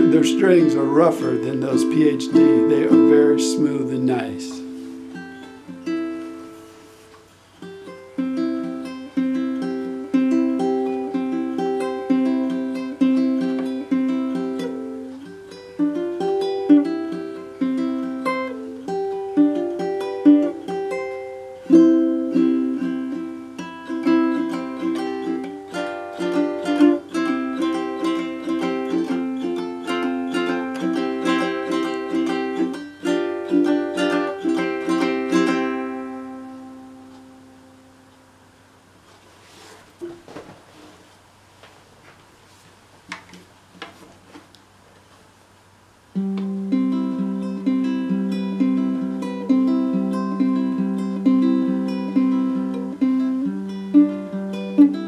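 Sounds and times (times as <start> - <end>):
ukulele plucked: 0.0 - 38.3, 46.1 - 55.0.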